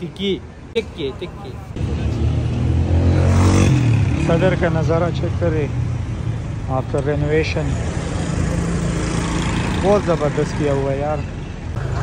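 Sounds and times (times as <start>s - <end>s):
vehicle engine passing by: 1.8s - 5.7s.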